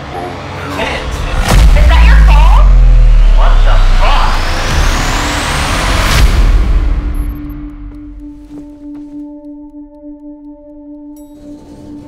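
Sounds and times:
rumbling build-up: 0.9 - 7.9
sharp hit: 1.1 - 7.5
rising noise sweep: 1.3 - 7.5.

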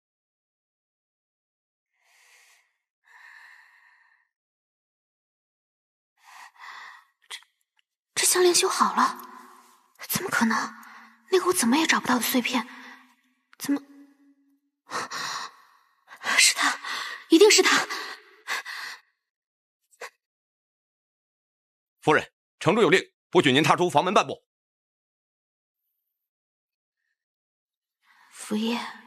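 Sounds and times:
woman speaking: 8.2 - 9.3, 10.0 - 12.7, 13.6 - 14.0, 17.3 - 18.0, 28.4 - 29.0.

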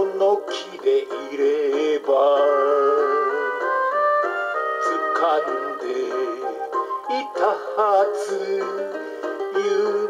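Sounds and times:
man singing a ballad: 0.0 - 3.7, 4.7 - 10.0
karaoke backing track: 0.0 - 10.0.

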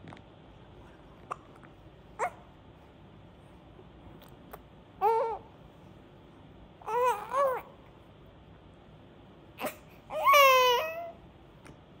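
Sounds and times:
infant squealing: 6.8 - 7.7, 9.6 - 11.2.

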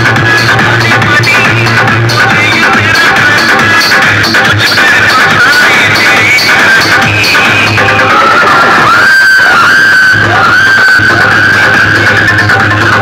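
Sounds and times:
loud electronic dance music: 0.0 - 13.0.

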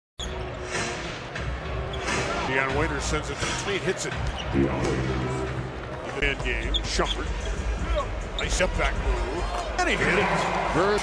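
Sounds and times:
crowd noise: 0.2 - 11.0.

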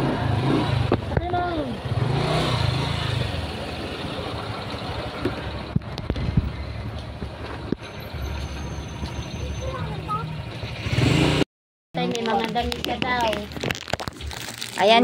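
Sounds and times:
scooter engine humming: 0.0 - 11.4.

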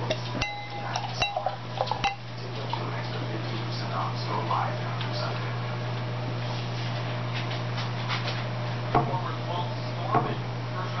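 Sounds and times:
steady low hum: 0.0 - 11.0
bottle clinking on glass rim: 0.4 - 2.3.

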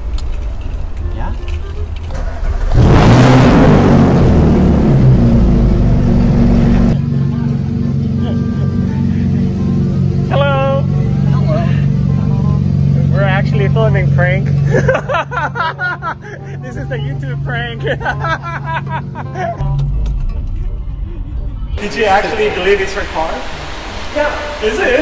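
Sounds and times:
car engine starting and idling: 0.0 - 25.0.

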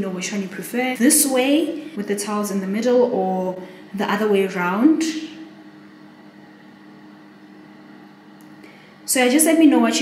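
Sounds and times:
extractor fan humming: 0.0 - 10.0.

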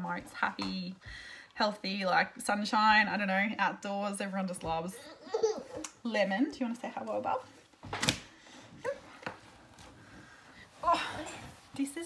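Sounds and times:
faint rustling: 7.1 - 12.0.

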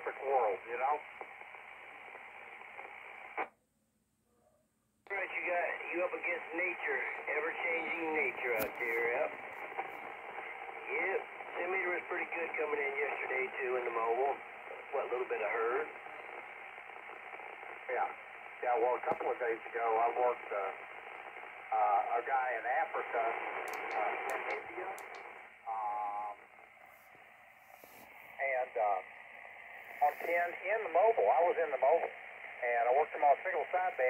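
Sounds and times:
radio carrier hiss: 0.0 - 3.5, 5.1 - 34.0
short burst of radio noise: 6.2 - 16.6, 21.4 - 34.0.

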